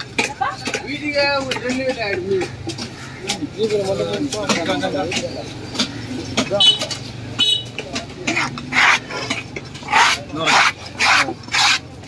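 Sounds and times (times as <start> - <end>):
knife scraping wooden chopping block: 1.4 - 12.0.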